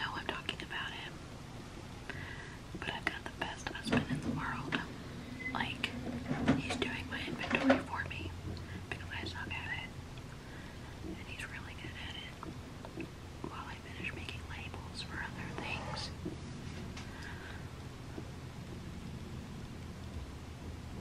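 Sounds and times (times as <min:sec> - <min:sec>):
woman whispering: 0:00.0 - 0:01.1, 0:02.8 - 0:10.0, 0:11.0 - 0:12.5, 0:13.4 - 0:16.2.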